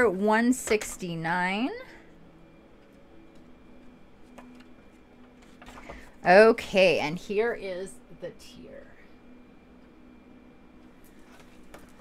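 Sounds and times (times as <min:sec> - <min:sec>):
low room hum: 0:00.0 - 0:12.0
pages rustling: 0:04.2 - 0:06.1, 0:11.0 - 0:12.0.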